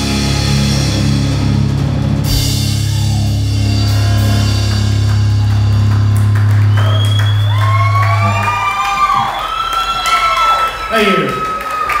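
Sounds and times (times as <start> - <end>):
rock band held chord: 0.0 - 8.8
crowd cheering and whooping: 2.4 - 12.0.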